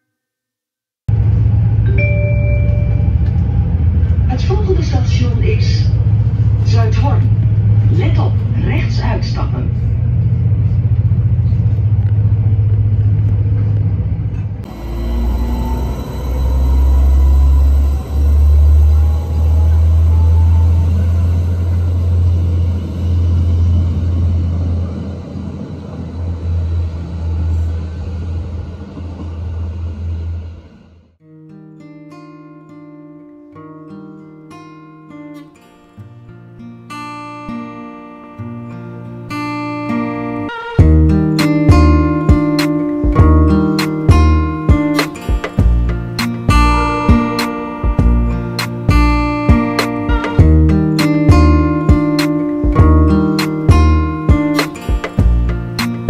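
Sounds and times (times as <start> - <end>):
train running hum inside carriage: 1.1 - 31.1
train engine rumbling: 1.1 - 31.2, 40.8 - 56.0.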